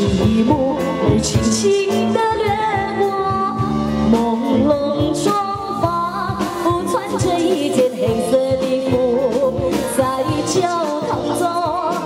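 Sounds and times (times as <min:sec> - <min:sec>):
live band with drum kit: 0:00.0 - 0:12.0
woman singing into microphone: 0:00.0 - 0:12.0.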